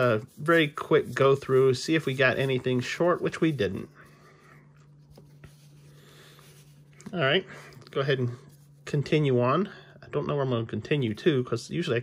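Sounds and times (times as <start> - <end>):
paper cards rustling: 4.8 - 7.1.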